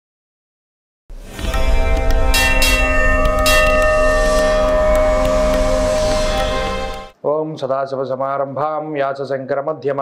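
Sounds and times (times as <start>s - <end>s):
temple bells ringing: 1.4s - 7.2s.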